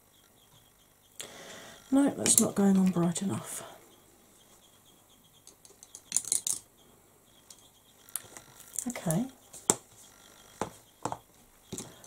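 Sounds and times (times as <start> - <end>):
makeup tools clicking and clattering: 5.5 - 6.6.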